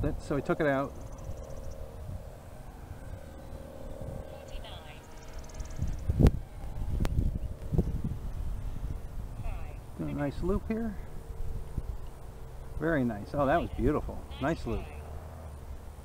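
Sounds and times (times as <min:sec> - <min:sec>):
distant model plane motor drone: 0:00.0 - 0:16.0
wind rumble on microphone: 0:00.0 - 0:16.0.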